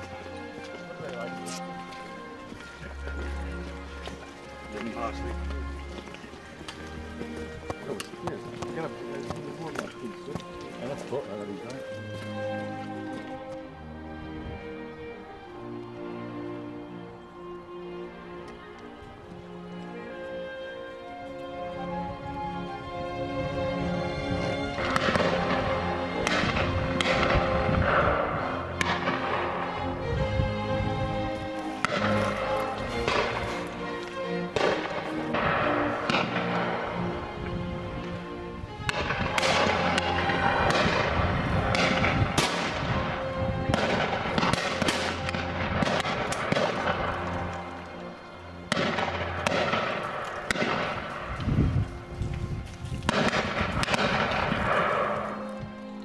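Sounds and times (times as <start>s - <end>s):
orchestral background music: 0.0s - 56.0s
shotgun shots with echo: 48.7s - 51.0s, 53.1s - 55.1s.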